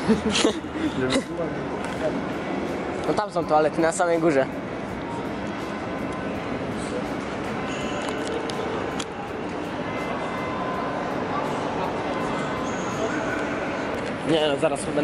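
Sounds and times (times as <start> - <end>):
faint background music: 0.0 - 15.0
indistinct voices: 0.0 - 15.0
shopping centre background noise: 0.0 - 15.0.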